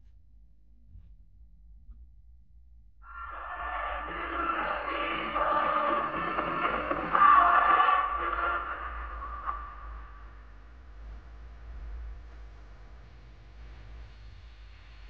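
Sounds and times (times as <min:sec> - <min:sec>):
narrow-band radio music: 0:03.1 - 0:10.0
radio noise: 0:03.2 - 0:09.8.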